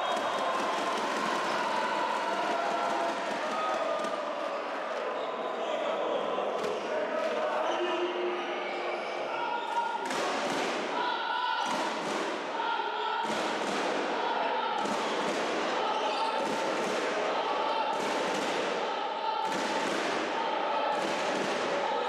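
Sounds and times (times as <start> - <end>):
murmur of voices: 0.0 - 22.0.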